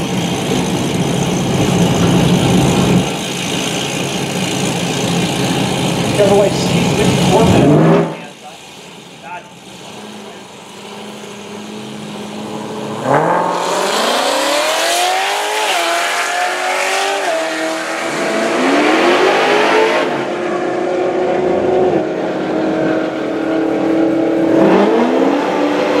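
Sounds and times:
car engine accelerating through gears: 0:00.2 - 0:08.4, 0:09.8 - 0:26.0.

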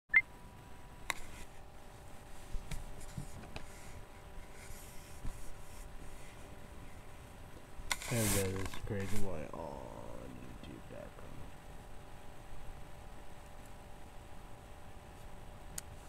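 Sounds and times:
faint steady hum: 0:00.1 - 0:16.0.

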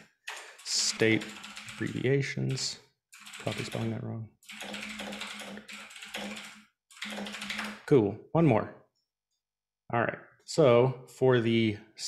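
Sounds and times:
person speaking: 0:00.3 - 0:02.8, 0:03.4 - 0:04.3
computer keyboard typing: 0:00.3 - 0:07.9.

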